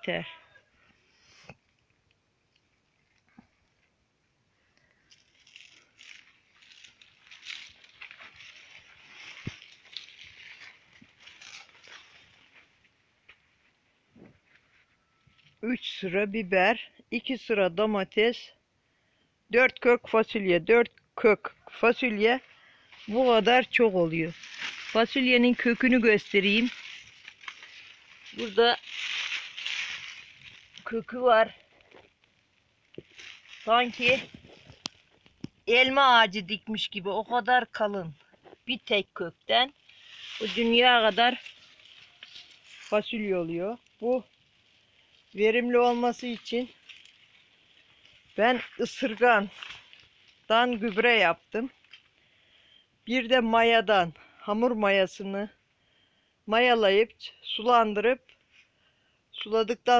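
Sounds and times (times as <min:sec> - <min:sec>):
leaves rustling and crackling: 0:04.6 - 0:16.5, 0:21.7 - 0:52.4.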